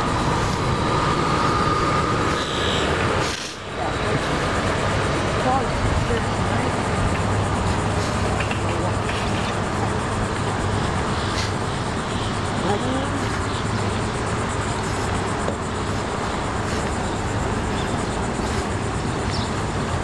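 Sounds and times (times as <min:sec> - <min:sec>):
traffic rumble: 0:00.0 - 0:20.0.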